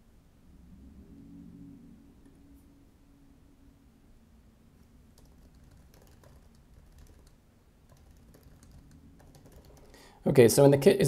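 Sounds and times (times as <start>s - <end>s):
typing on computer keyboard: 5.1s - 10.0s.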